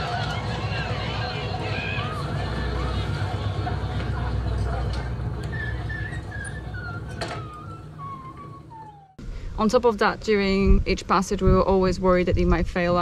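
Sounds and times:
boat engine rumbling: 0:00.0 - 0:13.0
voices: 0:00.0 - 0:13.0.

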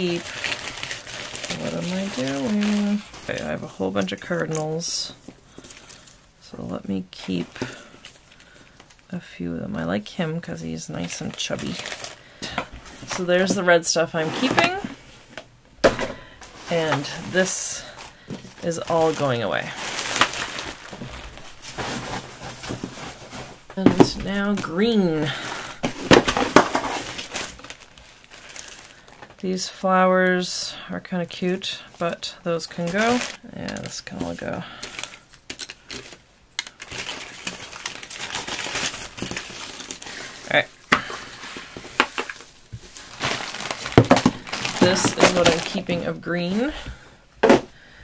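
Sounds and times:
faint rustling and handling: 0:00.0 - 0:09.2, 0:09.8 - 0:29.5, 0:31.2 - 0:47.8.

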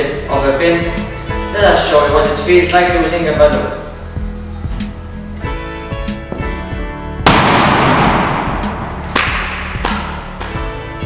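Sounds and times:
balloon bursting: 0:07.2 - 0:09.8.

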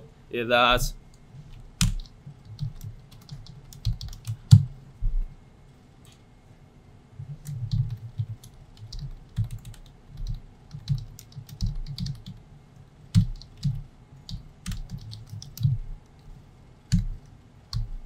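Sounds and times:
typing on computer keyboard: 0:01.8 - 0:04.6, 0:07.3 - 0:12.4, 0:13.1 - 0:15.8, 0:16.9 - 0:17.9.

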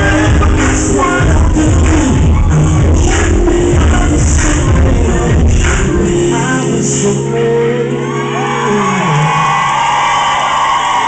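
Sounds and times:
live r and b concert music: 0:00.0 - 0:11.0.

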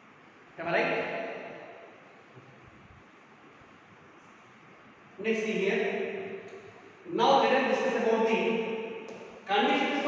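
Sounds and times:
man speaking with echo: 0:00.6 - 0:01.4, 0:05.2 - 0:06.3, 0:07.0 - 0:08.7, 0:09.4 - 0:10.0.

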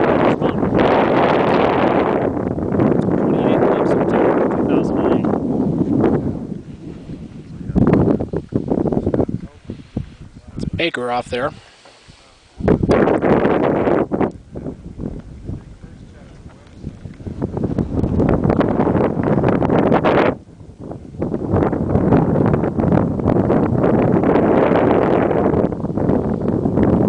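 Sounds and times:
wind buffeting microphone: 0:00.0 - 0:27.0.

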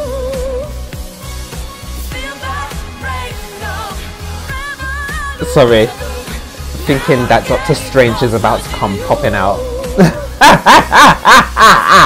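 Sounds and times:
woman laughing loudly: 0:10.0 - 0:12.0.

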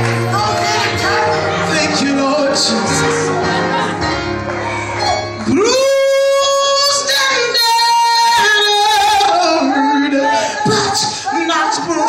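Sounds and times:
woman singing gospel: 0:00.0 - 0:02.8.

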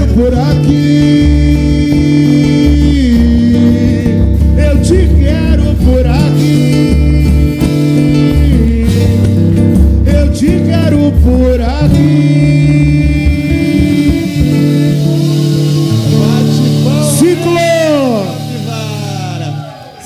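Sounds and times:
guitar: 0:00.0 - 0:20.0
percussion: 0:00.0 - 0:20.0
voices singing long notes: 0:11.6 - 0:20.0.

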